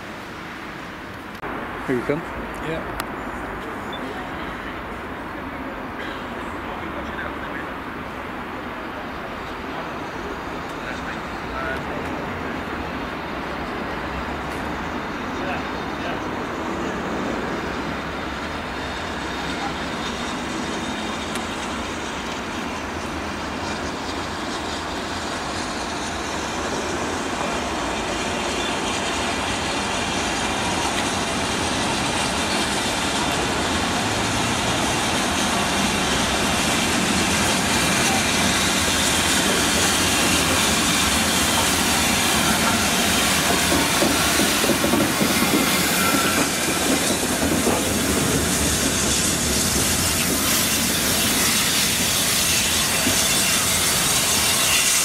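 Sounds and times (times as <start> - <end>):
steam locomotive passing: 0.0 - 55.0
steam hissing: 17.6 - 55.0.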